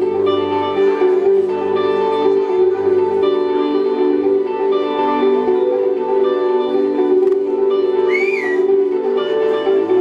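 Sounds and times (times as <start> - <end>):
high whistling tone: 8.0 - 8.7.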